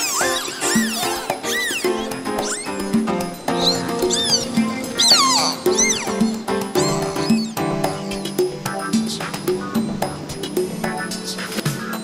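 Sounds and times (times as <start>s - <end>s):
dolphin whistles: 0.0s - 8.5s
instrumental music: 0.0s - 12.0s.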